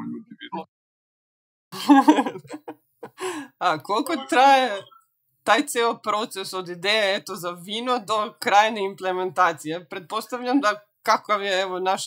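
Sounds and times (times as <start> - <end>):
woman's breathy laugh: 1.8 - 3.6
woman speaking: 1.8 - 4.9, 5.5 - 12.0.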